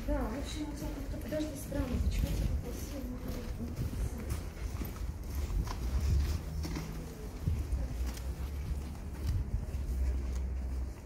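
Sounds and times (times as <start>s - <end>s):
footsteps in snow: 0.0s - 11.0s.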